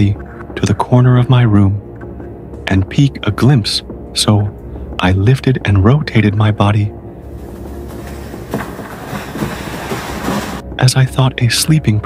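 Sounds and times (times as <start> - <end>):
low rumble: 7.1 - 10.6
steady rushing noise: 7.2 - 10.6.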